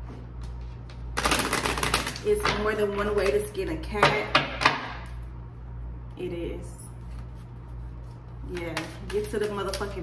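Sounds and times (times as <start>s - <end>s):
cards being shuffled: 7.0s - 10.0s.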